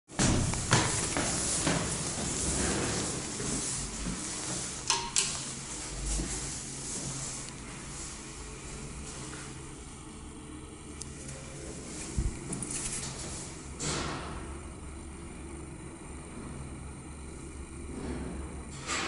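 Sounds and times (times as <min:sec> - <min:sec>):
footsteps on steps: 0:00.2 - 0:04.6.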